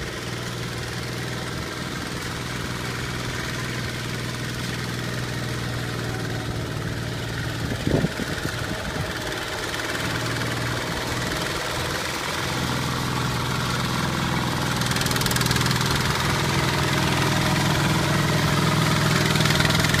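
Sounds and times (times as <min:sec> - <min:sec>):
diesel tiller engine running: 0:00.0 - 0:20.0
wheels churning wet mud: 0:00.0 - 0:20.0.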